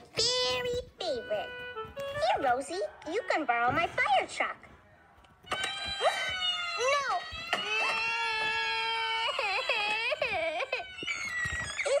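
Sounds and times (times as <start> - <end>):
cartoon toddler crying through speaker: 5.5 - 12.0.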